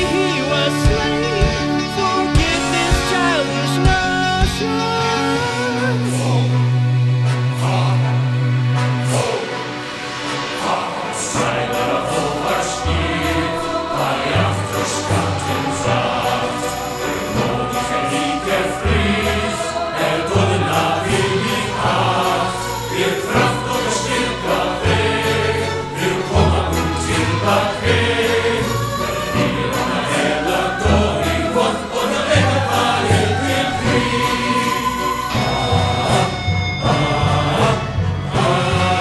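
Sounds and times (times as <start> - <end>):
group of voices singing: 0.0 - 39.0.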